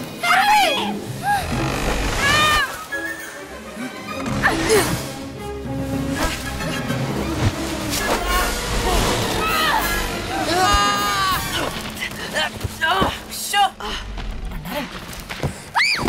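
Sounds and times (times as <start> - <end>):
film score music: 0.0 - 16.0
people yelling and shouting: 8.0 - 11.8.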